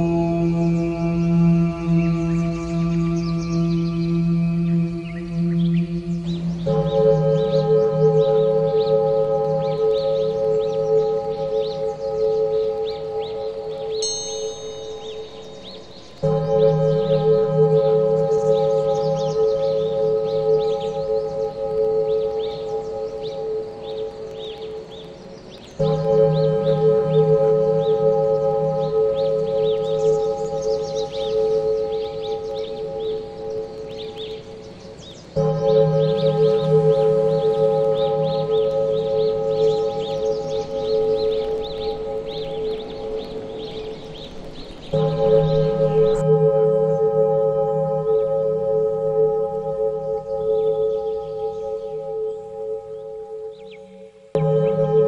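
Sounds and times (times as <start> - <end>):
singing bowl tone: 0.0 - 25.2, 25.8 - 55.0
high chirp: 0.0 - 55.0
high twittering: 2.1 - 55.0.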